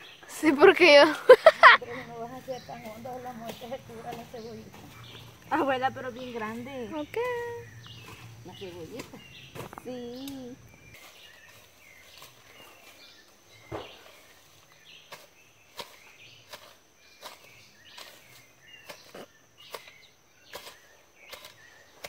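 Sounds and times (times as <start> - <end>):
hand tool scraping in soil: 0.4 - 22.0.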